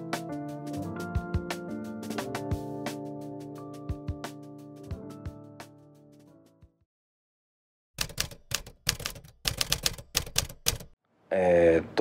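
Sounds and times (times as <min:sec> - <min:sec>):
typewriter key clacks: 0:08.0 - 0:10.9.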